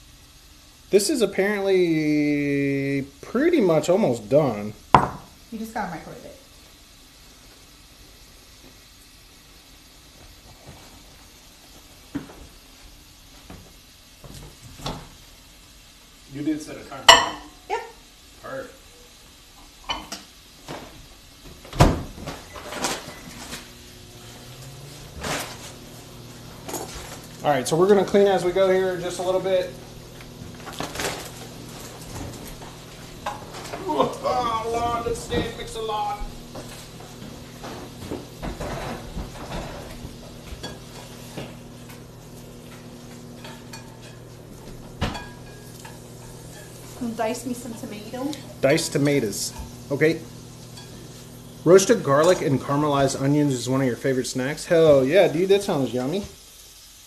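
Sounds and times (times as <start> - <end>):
steady low hum: 22.8 - 53.5
dishes and utensils clattering: 36.5 - 42.0, 42.7 - 47.0.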